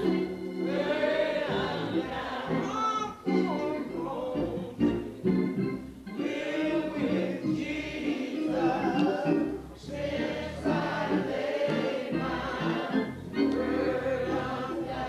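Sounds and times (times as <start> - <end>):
choir singing gospel music: 0.0 - 15.0.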